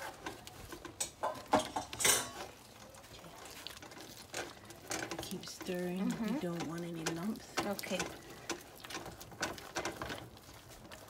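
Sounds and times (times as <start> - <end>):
stirring thick mixture: 0.0 - 11.0
wooden spoon scraping pot: 0.0 - 11.0.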